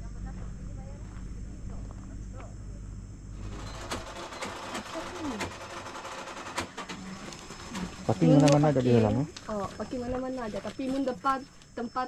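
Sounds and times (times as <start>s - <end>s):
sharp clicks and knocks: 3.5s - 7.9s.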